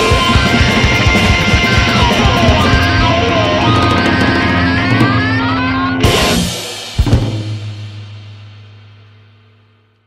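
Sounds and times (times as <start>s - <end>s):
cymbal crash: 0.0s - 10.0s
distorted electric guitar: 0.0s - 10.0s
drums: 0.0s - 10.0s.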